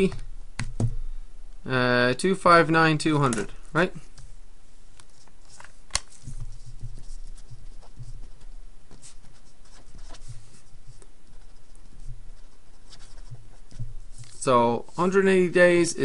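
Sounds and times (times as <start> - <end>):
pen writing on paper: 6.4 - 13.9.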